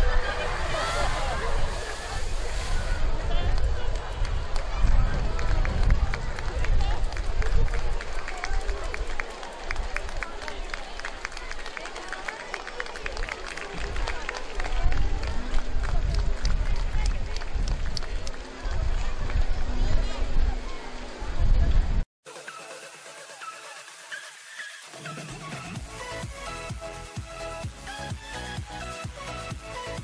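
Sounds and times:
wind rumble on microphone: 0:00.0 - 0:11.6, 0:13.2 - 0:22.0.

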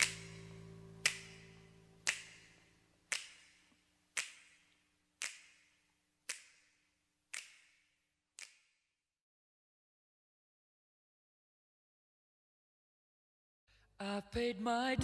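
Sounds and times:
held low chord: 0:00.0 - 0:02.7
finger snaps with reverb: 0:00.0 - 0:08.8.

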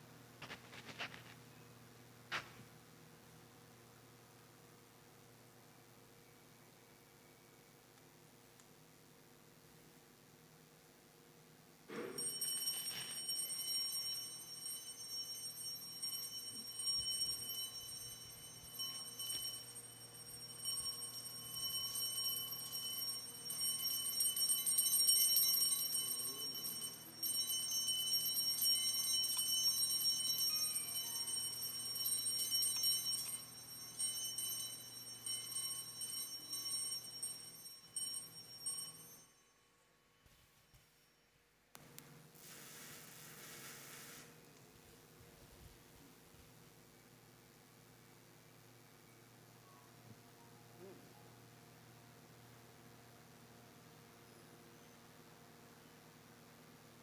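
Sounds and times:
altar bells ringing: 0:11.9 - 0:40.0.

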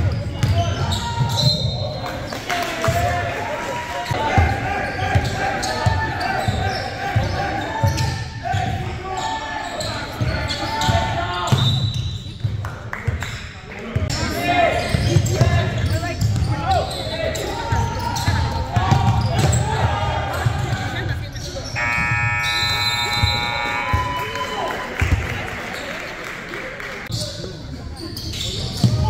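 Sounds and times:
players' voices echoing: 0:00.0 - 0:11.9, 0:12.5 - 0:29.0
electronic scoreboard buzzer: 0:21.8 - 0:24.4.

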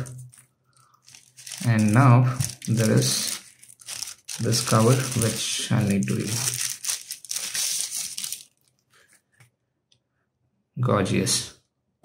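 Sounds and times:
protective sleeve crinkling: 0:00.0 - 0:09.2.

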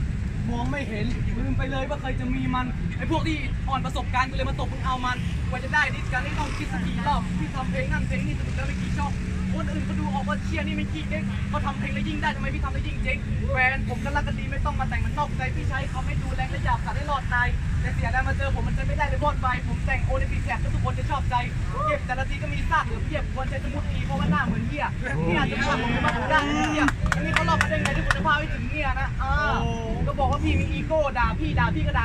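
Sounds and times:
man rapping: 0:00.6 - 0:32.0.

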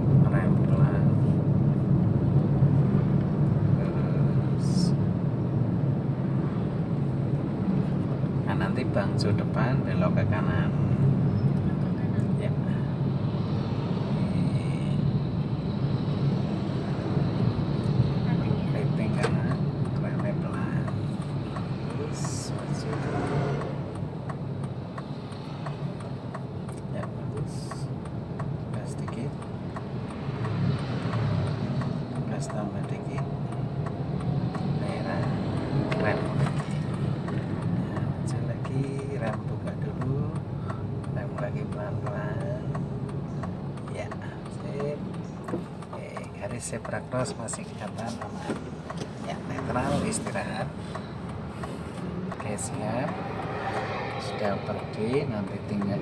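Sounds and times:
car engine and road hum: 0:00.0 - 0:56.0.

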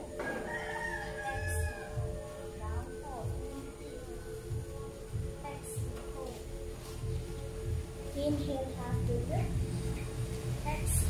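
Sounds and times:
rooster crowing: 0:00.0 - 0:02.3
background music: 0:00.0 - 0:11.0.

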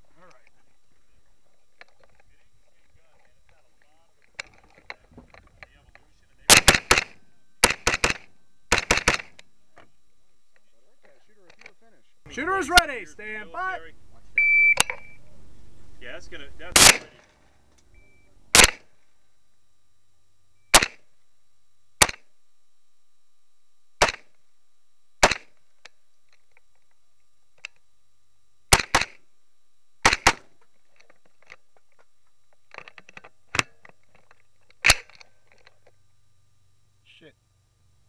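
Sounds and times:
faint clicks and knocks: 0:00.1 - 0:06.3, 0:30.5 - 0:36.2
carbine gunshots: 0:06.4 - 0:09.4, 0:16.7 - 0:17.2, 0:18.5 - 0:18.9, 0:20.7 - 0:21.1, 0:22.0 - 0:22.2, 0:24.0 - 0:24.3, 0:25.2 - 0:25.5, 0:28.7 - 0:29.2, 0:30.0 - 0:30.5.

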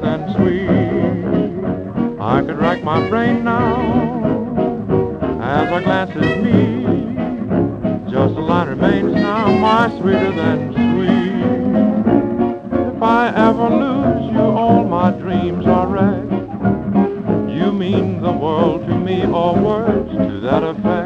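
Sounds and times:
jazz dance orchestra: 0:00.0 - 0:21.0.

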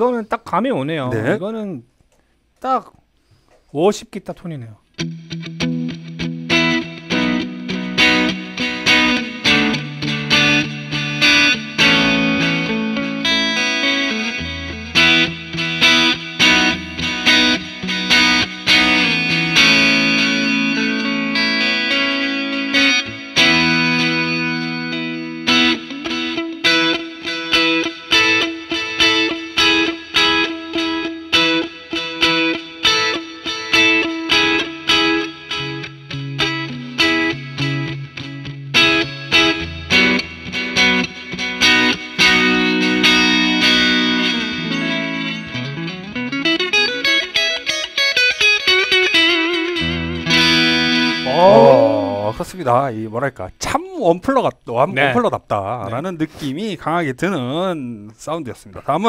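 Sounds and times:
overdriven electric guitar chords: 0:05.0 - 0:52.4.

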